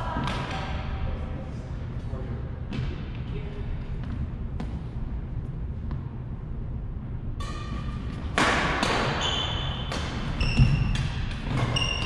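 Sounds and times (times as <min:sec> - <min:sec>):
racket hitting shuttlecock: 0:07.4 - 0:12.0
sneakers squeaking on wood floor: 0:09.0 - 0:12.0.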